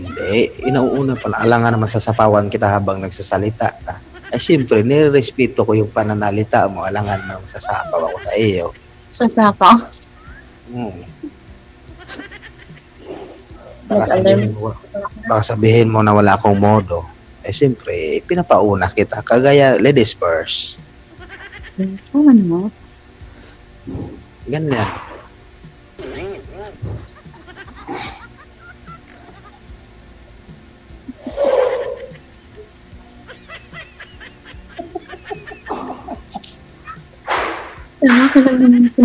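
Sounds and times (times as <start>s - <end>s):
woman laughing: 0.6s - 1.6s, 7.6s - 8.4s, 12.0s - 12.7s, 13.9s - 15.4s, 21.4s - 22.2s, 26.1s - 29.6s, 31.0s - 32.7s, 33.3s - 37.1s, 38.0s - 39.0s.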